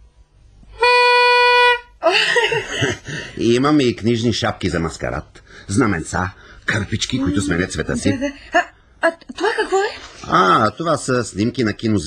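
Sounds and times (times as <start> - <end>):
harmonica held note: 0.7 - 2.0.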